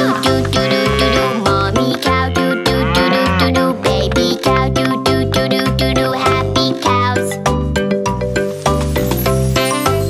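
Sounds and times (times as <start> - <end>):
upbeat children's music: 0.0 - 10.0
cow mooing: 0.6 - 3.8.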